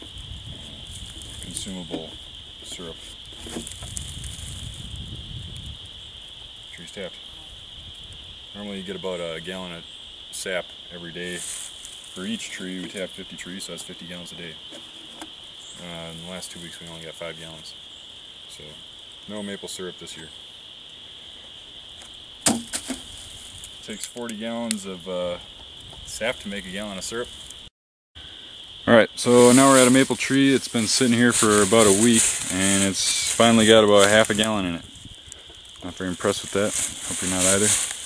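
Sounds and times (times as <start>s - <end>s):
outdoor rumble on microphone: 0.0s - 17.8s, 29.2s - 38.0s
sharp woody cracks: 22.4s - 23.1s.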